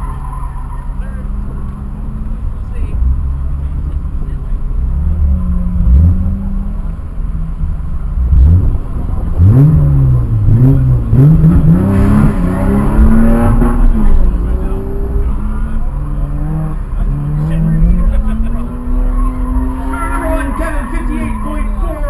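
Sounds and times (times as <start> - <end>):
car accelerating away: 0.0 - 22.0
car engine idling: 0.0 - 22.0
car engine revving: 0.0 - 22.0.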